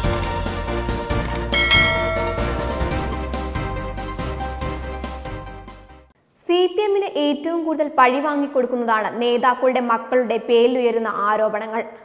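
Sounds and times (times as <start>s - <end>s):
background music: 0.0s - 6.1s
bright bell chime: 1.6s - 3.3s.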